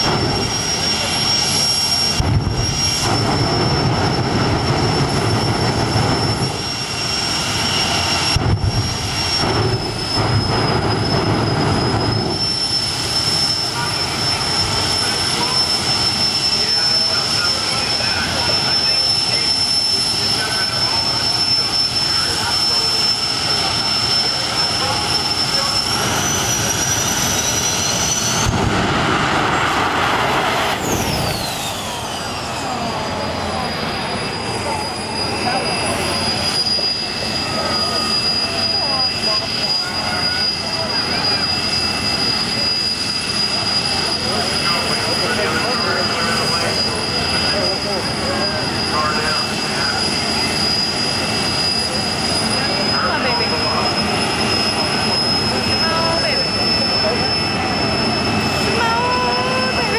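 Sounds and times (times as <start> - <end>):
turbine engine whine: 0.0 - 59.9.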